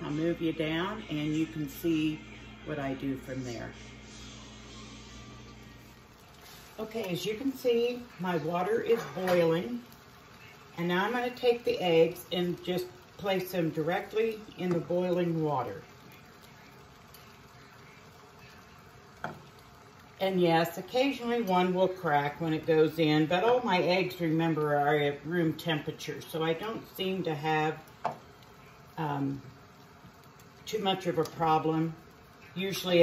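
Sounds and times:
soft hiss: 0.0 - 23.1
water boiling in a pot: 0.0 - 33.0.

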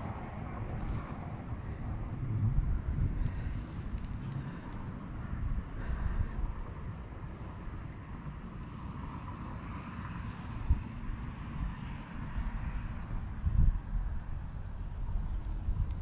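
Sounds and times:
wind buffeting microphone: 0.0 - 9.6, 10.4 - 16.0.

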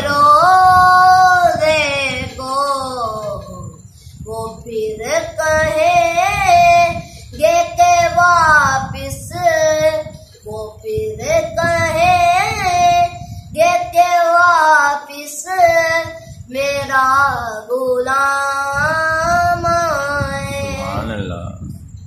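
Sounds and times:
boy singing unaccompanied: 0.0 - 21.6.

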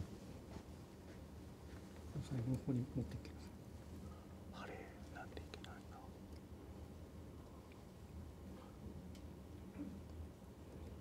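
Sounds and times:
people whispering: 4.5 - 6.2.

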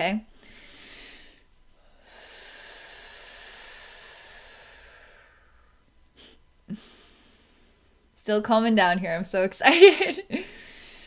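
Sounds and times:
woman breathing softly: 0.3 - 7.9, 10.4 - 11.0.

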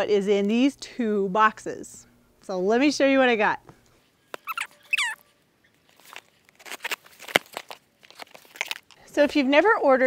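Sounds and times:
cardboard flaps tearing open: 5.9 - 9.0
scissors slitting packing tape: 6.0 - 9.0.

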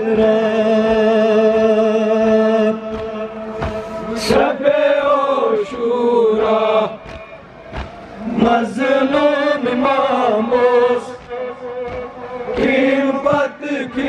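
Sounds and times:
men chanting a lament: 0.0 - 7.6, 8.2 - 14.0
lead voice singing: 0.0 - 14.0
hands slapping chests: 2.9 - 4.0, 6.4 - 8.1, 10.5 - 13.4.

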